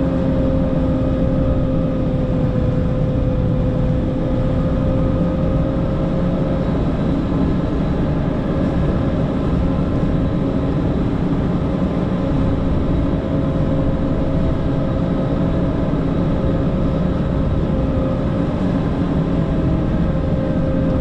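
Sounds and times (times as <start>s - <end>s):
snow groomer engine rumble: 0.0s - 21.0s
steady whine: 0.0s - 21.0s.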